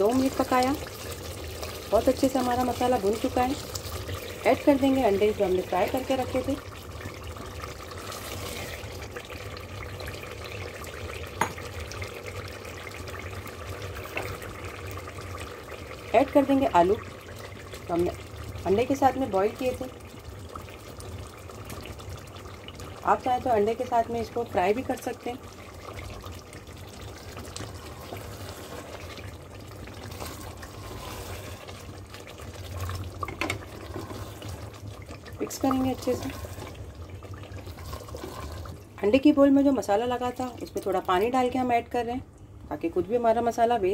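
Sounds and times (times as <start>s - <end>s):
food sizzling and simmering: 0.0s - 43.9s
sauce bubbling in a pot: 0.0s - 43.9s
spatula scraping pot: 7.9s - 9.0s, 27.2s - 38.8s.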